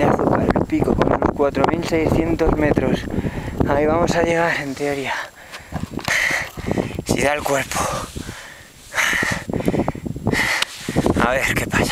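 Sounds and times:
person breathing hard: 0:03.1 - 0:03.6, 0:05.0 - 0:07.1, 0:07.7 - 0:11.2.

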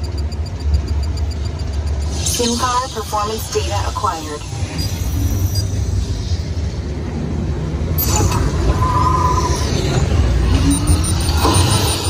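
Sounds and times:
high electronic beeps: 0:00.0 - 0:06.5, 0:08.0 - 0:12.0
ride vehicle low rumble: 0:00.0 - 0:12.0.

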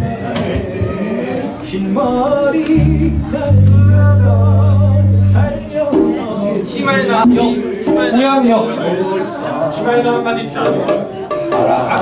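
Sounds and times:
live band rehearsing: 0:00.4 - 0:08.6, 0:10.6 - 0:12.0
person singing with wavering voice: 0:00.8 - 0:06.2
low held bass note: 0:02.8 - 0:05.8.

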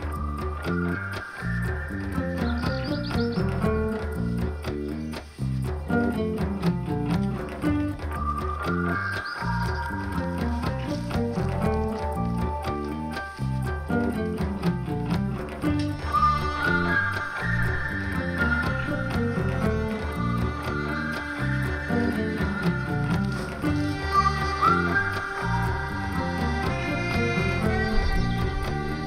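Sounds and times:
electric bass notes: 0:00.0 - 0:29.0
keyboard and cello held notes: 0:09.4 - 0:29.0.

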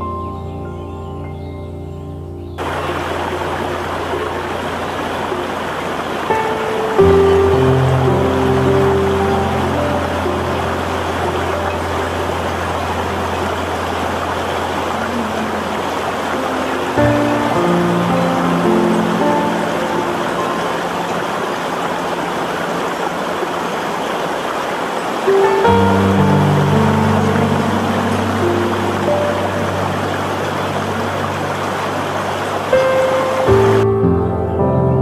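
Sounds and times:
slow meditation music: 0:00.0 - 0:35.0
water flowing over rocks: 0:02.6 - 0:34.1.

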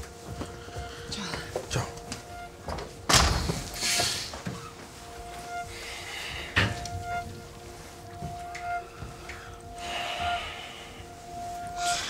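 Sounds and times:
held synth notes: 0:00.0 - 0:12.0.

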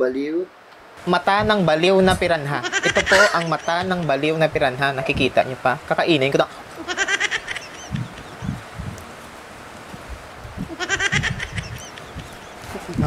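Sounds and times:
goat bleating: 0:02.2 - 0:04.0
soft low sounds: 0:07.6 - 0:13.0.

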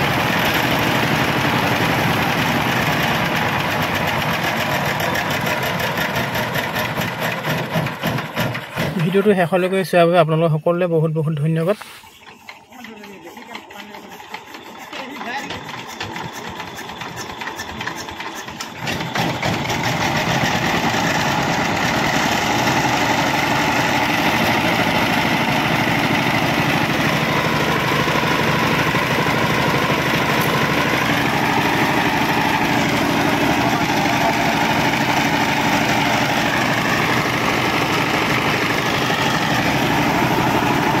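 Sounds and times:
diesel engine being hand-cranked: 0:00.0 - 0:41.0
diesel engine chugging: 0:00.0 - 0:41.0.

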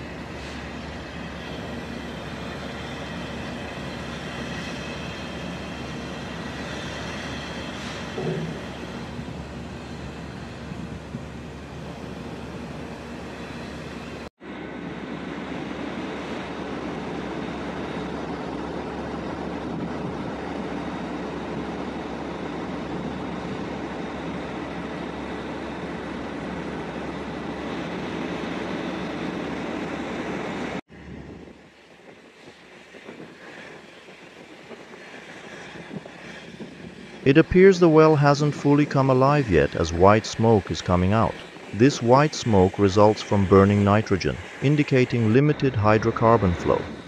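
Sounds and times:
machinery running: 0:00.0 - 0:14.3, 0:37.3 - 0:47.0
burner flaring roar: 0:00.0 - 0:47.0.

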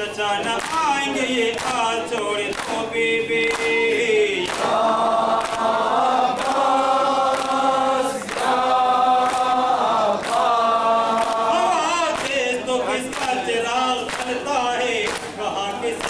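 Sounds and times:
men chanting in unison: 0:00.0 - 0:16.0
rhythmic chest-beating: 0:00.0 - 0:16.0.

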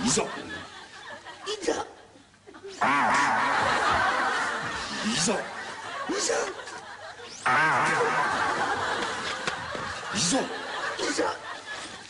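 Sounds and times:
studio audience laughing: 0:00.0 - 0:12.0.

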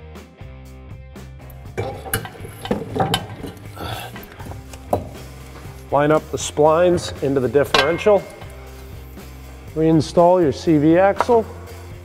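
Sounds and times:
background music with beat: 0:00.0 - 0:12.0
metallic clinks and knocks: 0:01.5 - 0:05.8, 0:07.0 - 0:09.0.

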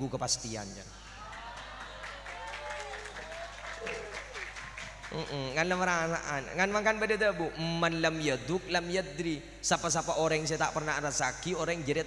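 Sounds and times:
audience clapping: 0:01.2 - 0:05.7.

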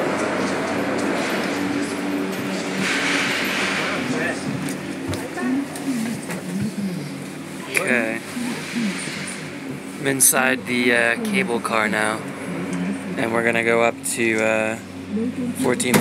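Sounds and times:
cable car machinery humming: 0:00.0 - 0:16.0
voices talking: 0:00.0 - 0:16.0.

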